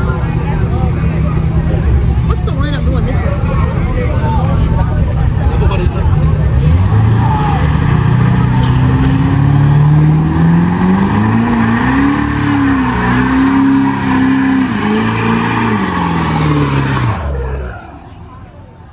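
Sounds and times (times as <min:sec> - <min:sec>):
engine revving high: 0:05.7 - 0:18.2.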